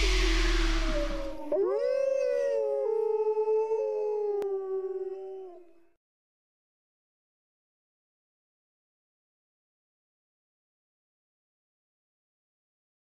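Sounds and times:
noisy music effect: 0:00.0 - 0:01.7
wolf howling: 0:00.0 - 0:05.8.

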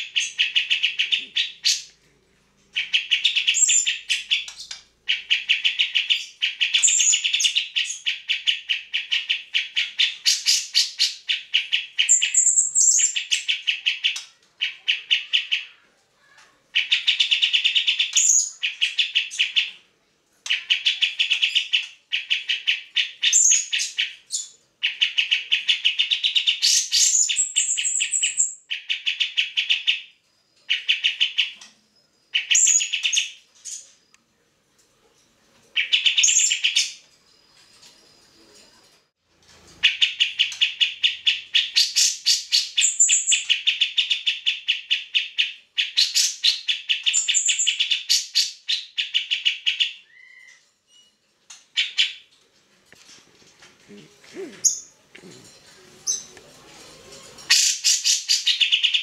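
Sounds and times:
bird chattering song: 0:00.0 - 0:02.0, 0:02.8 - 0:15.8, 0:16.7 - 0:19.8, 0:20.4 - 0:34.0, 0:39.8 - 0:50.6, 0:57.4 - 0:59.0.

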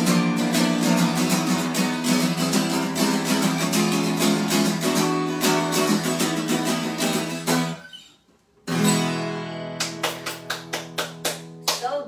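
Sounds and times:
acoustic guitar strumming: 0:00.0 - 0:11.7.

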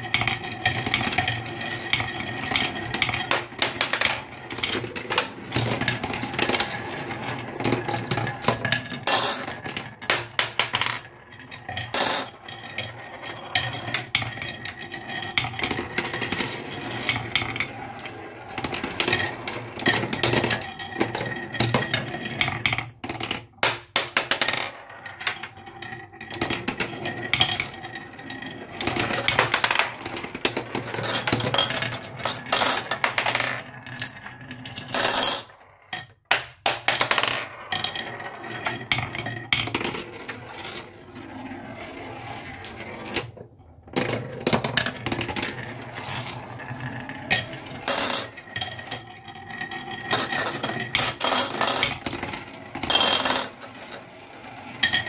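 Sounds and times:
marbles rolling down wooden run: 0:00.0 - 0:55.0.

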